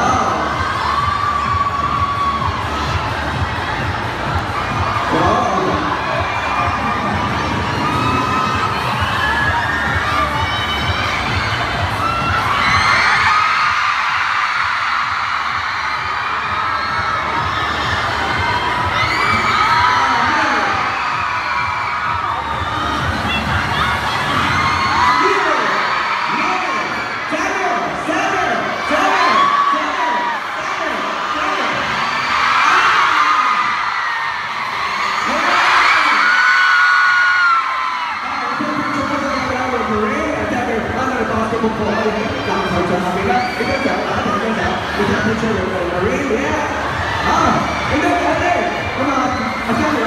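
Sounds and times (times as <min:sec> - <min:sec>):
crowd cheering and screaming: 0:00.0 - 0:50.0.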